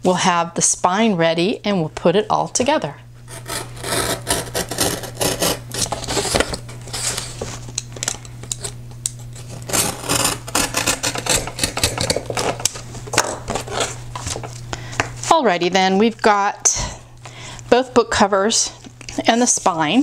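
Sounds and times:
knife slicing cardboard: 3.3s - 6.5s, 9.7s - 12.6s.

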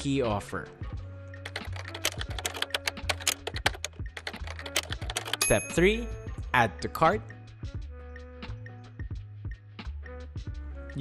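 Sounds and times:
computer keyboard typing: 1.4s - 6.0s.

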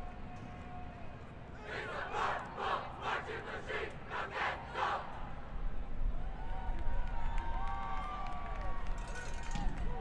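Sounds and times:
group shouting a chant: 1.6s - 5.1s.

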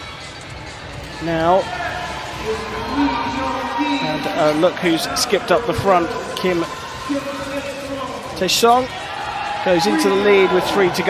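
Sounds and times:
man commentating: 2.4s - 8.9s, 9.6s - 11.0s.

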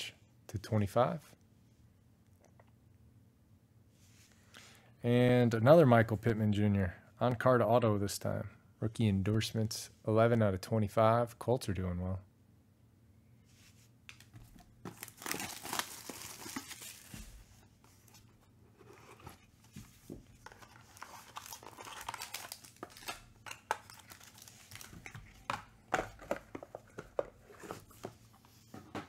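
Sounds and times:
plastic wrap crinkling and tearing: 14.8s - 17.4s, 20.5s - 25.6s.

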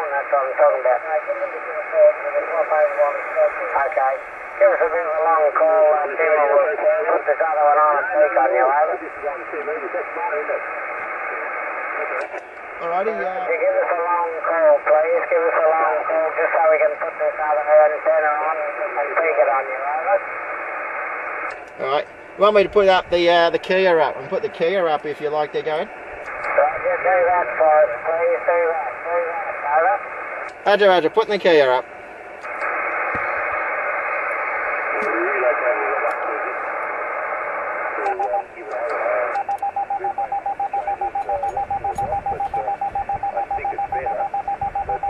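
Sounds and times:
radio receiver hiss: 0.0s - 45.0s
morse code beeps: 39.2s - 45.0s.

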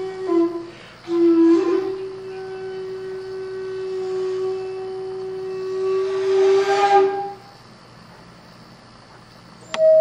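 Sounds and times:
bamboo flute long held note: 0.0s - 7.5s, 9.7s - 10.0s.

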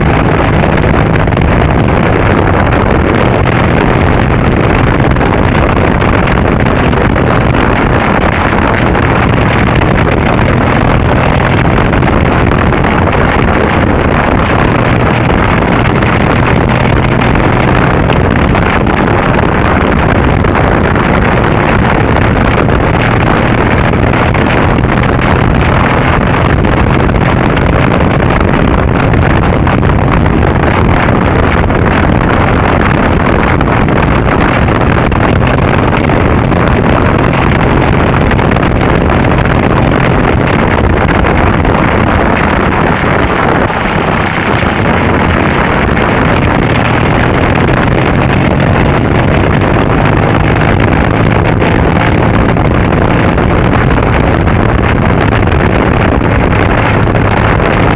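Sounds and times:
motorcycle engine drone: 0.0s - 57.9s
wind rushing over microphone: 0.0s - 57.9s.

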